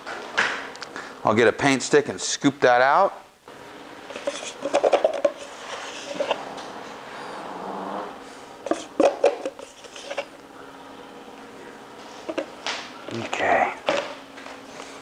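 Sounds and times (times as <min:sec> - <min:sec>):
stick scraping in plastic cup: 0:04.1 - 0:06.4, 0:08.7 - 0:10.3.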